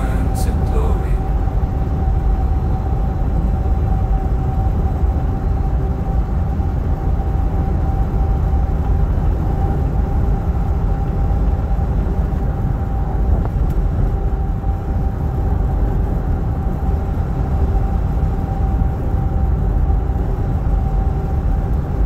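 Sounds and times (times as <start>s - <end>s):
faint steady hum: 0.0s - 22.0s
vehicle road noise rumble: 0.0s - 22.0s.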